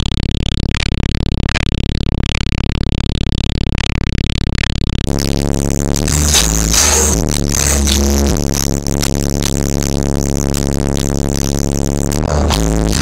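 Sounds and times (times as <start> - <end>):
bass-heavy electronic music: 4.9 - 13.0.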